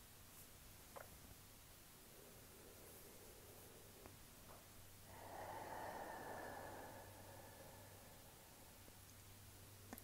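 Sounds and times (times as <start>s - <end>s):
person exhaling softly: 2.0s - 9.3s.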